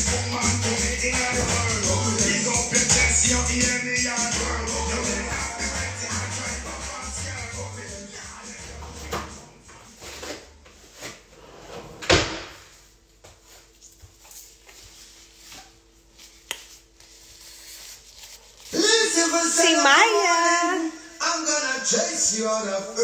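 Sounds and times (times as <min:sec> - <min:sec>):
background music with bass line: 0:00.0 - 0:09.8
woman speaking loudly: 0:19.3 - 0:20.9.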